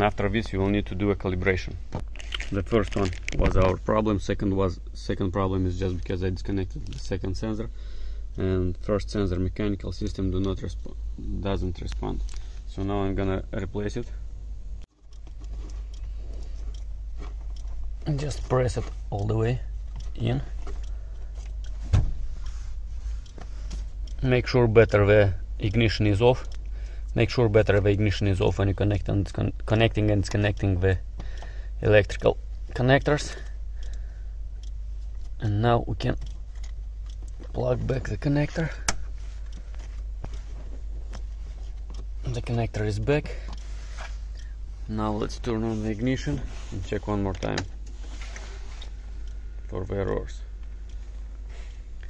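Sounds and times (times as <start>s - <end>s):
hands clicking and rustling wiring: 0.0s - 4.1s, 14.9s - 34.0s, 34.6s - 44.5s
steady low hum: 0.0s - 52.0s.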